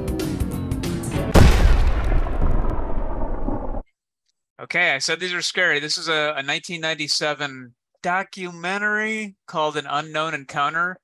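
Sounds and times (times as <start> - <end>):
explosion rumble: 1.3 - 3.8.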